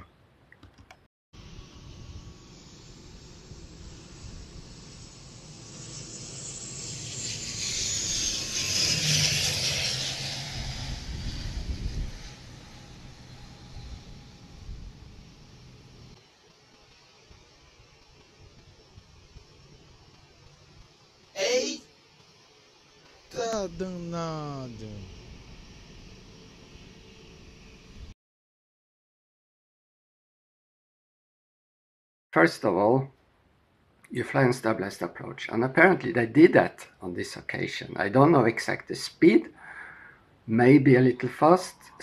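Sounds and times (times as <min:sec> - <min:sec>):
turboprop plane flying past: 0:01.4 - 0:20.9, 0:24.5 - 0:28.1
engine whine falling in pitch: 0:23.3 - 0:28.1.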